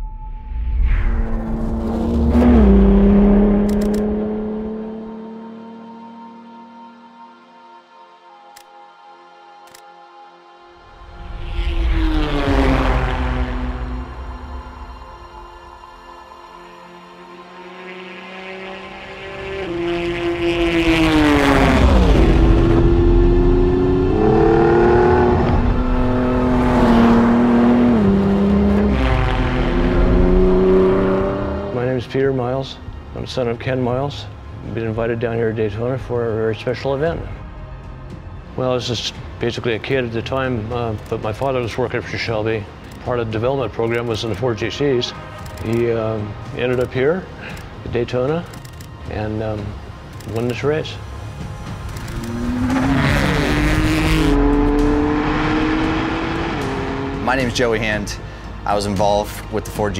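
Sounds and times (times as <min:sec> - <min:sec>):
droning tone: 0:00.0 - 0:04.7, 0:05.8 - 0:33.2
race car engine passing: 0:00.9 - 0:07.3, 0:11.0 - 0:14.8, 0:16.9 - 0:33.9, 0:50.8 - 0:58.3.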